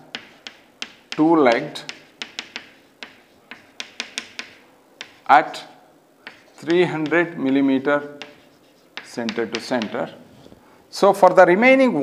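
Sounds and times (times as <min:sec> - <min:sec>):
chalk tapping on blackboard: 0:00.0 - 0:10.6.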